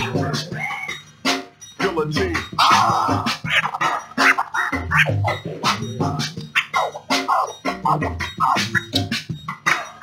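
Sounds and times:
backing beat with bass line: 0.0s - 10.0s
vinyl record scratching: 0.0s - 10.0s.

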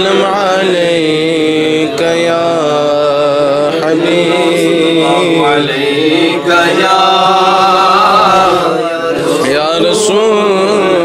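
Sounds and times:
man singing melismatic notes: 0.0s - 6.9s, 7.5s - 11.0s.

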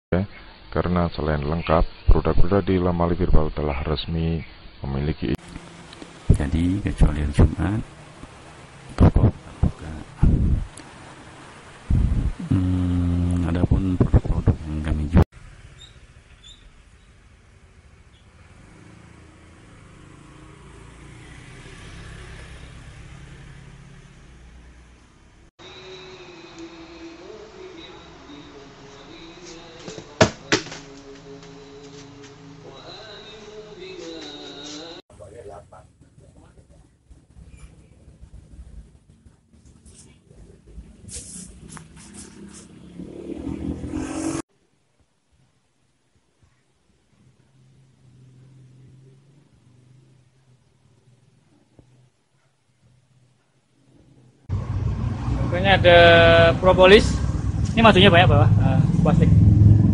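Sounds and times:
vehicle engine: 5.4s - 44.4s, 47.2s - 52.2s, 53.8s - 59.9s.

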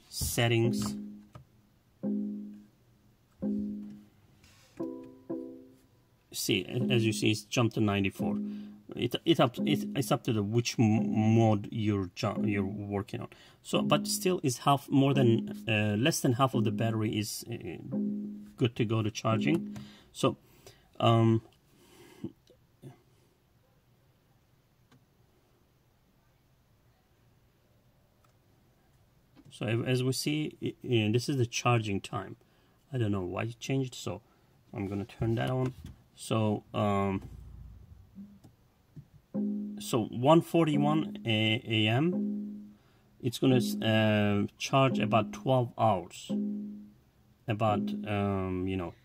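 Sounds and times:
dashboard chime tones: 0.7s - 1.3s, 3.4s - 4.0s, 6.7s - 7.4s, 8.1s - 8.7s, 9.4s - 10.3s, 12.4s - 12.8s, 13.8s - 14.4s, 15.1s - 17.1s, 19.3s - 19.9s, 39.4s - 42.7s, 43.5s - 44.2s, 44.9s - 45.7s, 46.3s - 47.0s, 47.6s - 48.4s.

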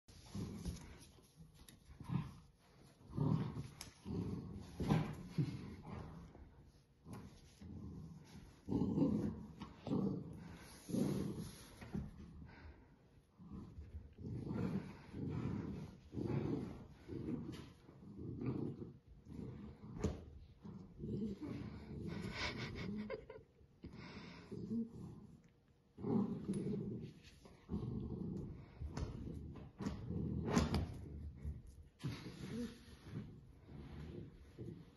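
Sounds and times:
puppies growling: 0.2s - 34.9s.

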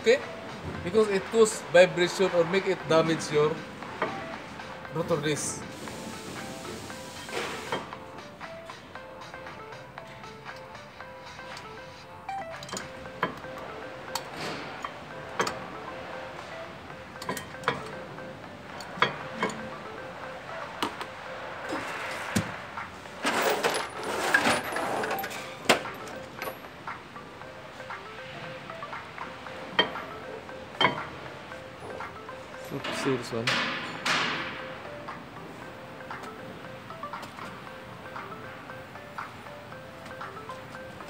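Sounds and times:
background music: 0.0s - 41.0s
metallic clinks of brake parts: 12.4s - 15.6s, 17.2s - 18.0s.

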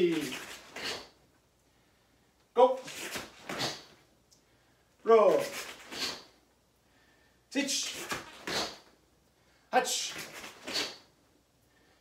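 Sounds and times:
man calling out sharp counts: 0.0s - 0.4s, 2.5s - 3.0s, 5.0s - 5.6s, 7.5s - 8.7s, 9.7s - 10.3s
swish of clothing punches: 2.9s - 3.9s.

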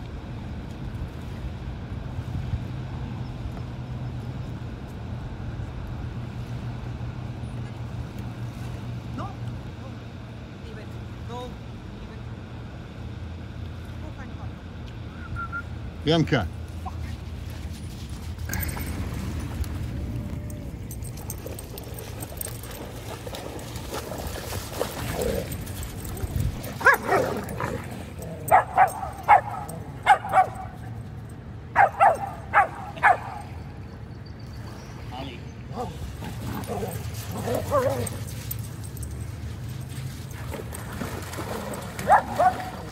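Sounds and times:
low mechanical drone: 0.0s - 42.9s.

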